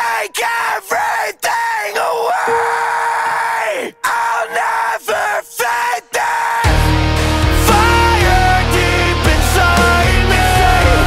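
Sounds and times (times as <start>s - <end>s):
yelled vocals with heavy effects: 0.0s - 11.0s
heavy rock band with drums: 6.7s - 11.0s.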